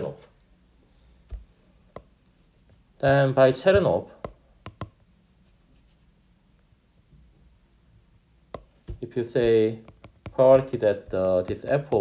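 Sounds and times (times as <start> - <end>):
stylus tapping on glass screen: 1.3 - 2.2, 3.1 - 5.0, 8.5 - 11.3.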